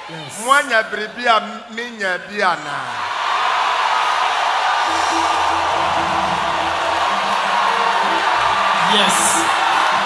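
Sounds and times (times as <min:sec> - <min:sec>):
music with held bass notes: 0:04.9 - 0:10.0.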